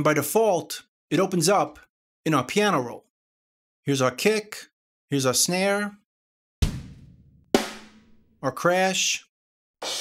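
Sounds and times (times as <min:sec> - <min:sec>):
single drum hits: 0:06.6 - 0:08.3.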